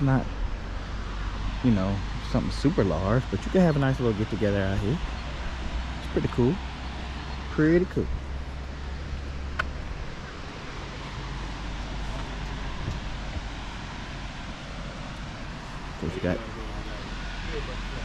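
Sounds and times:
engine humming: 0.0s - 18.0s.

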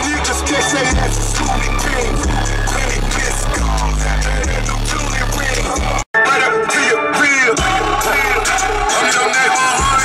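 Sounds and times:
deep bass line: 0.0s - 6.1s, 7.6s - 9.0s, 9.8s - 10.0s
song with sung vocal: 0.0s - 10.0s.

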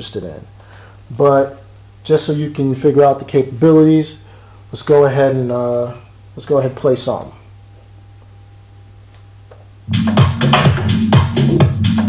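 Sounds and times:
low steady hum: 0.0s - 9.9s
electronic dance music: 9.9s - 12.0s.

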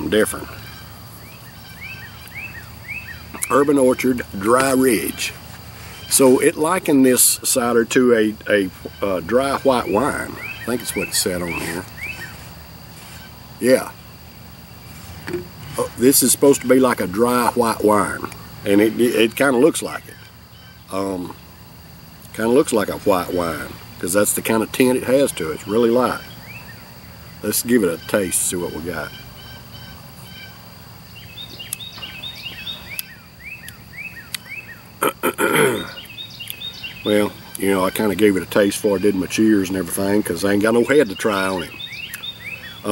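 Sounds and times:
songbird whistling: 0.0s - 21.5s, 23.1s - 35.0s, 35.8s - 42.9s
high-pitched insect drone: 0.0s - 42.9s.

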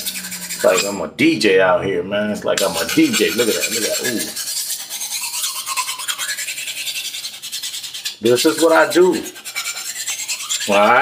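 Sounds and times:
knife scraping on sharpening steel: 0.0s - 1.0s, 2.6s - 11.0s.

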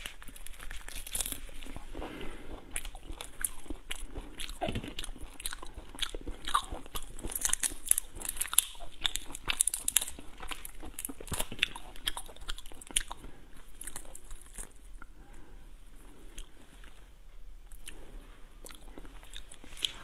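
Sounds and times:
crunching between teeth: 0.0s - 15.3s, 17.7s - 20.0s.

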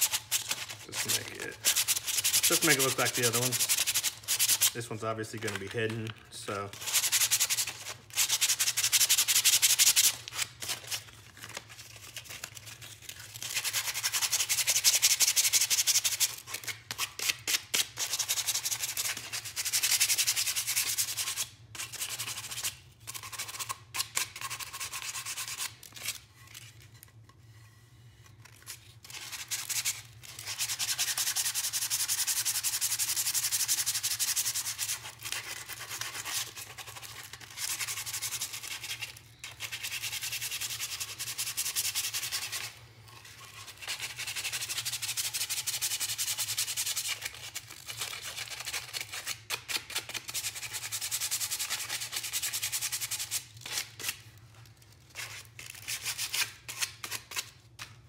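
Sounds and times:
sandpaper scratching on wood: 0.0s - 5.8s, 6.7s - 10.9s, 13.4s - 26.2s, 29.1s - 42.8s, 43.4s - 54.1s.

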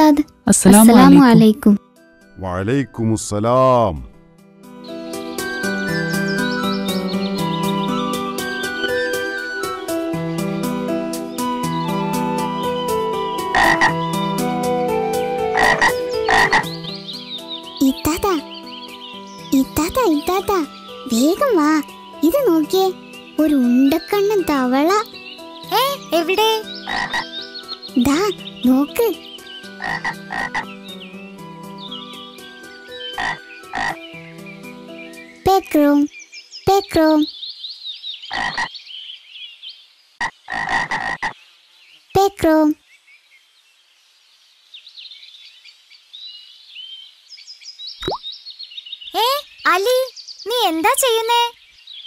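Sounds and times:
child calling out: 0.7s - 1.6s
birds twittering faintly: 4.7s - 52.0s
cartoon frog croaking: 13.5s - 14.0s, 15.5s - 16.7s, 26.8s - 27.3s, 29.8s - 30.7s, 33.2s - 34.0s, 38.3s - 38.7s, 40.2s - 41.4s.

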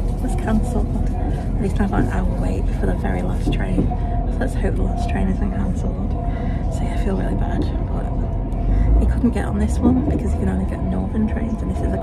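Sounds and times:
woman talking: 0.0s - 8.3s, 9.0s - 12.0s
train carriage rumble: 0.0s - 12.0s.

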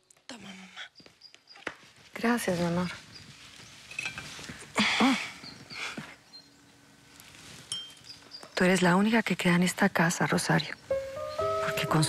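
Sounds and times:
small movement sounds: 0.0s - 8.9s.

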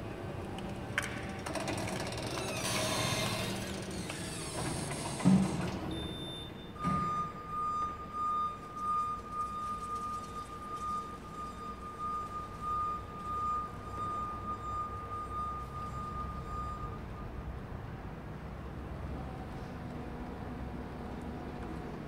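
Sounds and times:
high-pitched warning tone: 5.9s - 17.3s.

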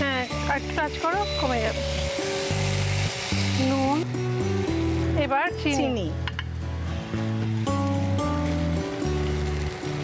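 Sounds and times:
music of sustained chords: 0.0s - 10.0s.

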